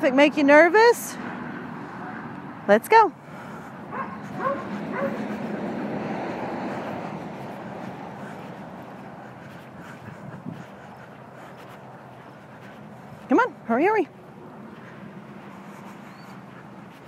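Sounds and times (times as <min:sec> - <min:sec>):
passing road traffic: 0:00.0 - 0:17.0.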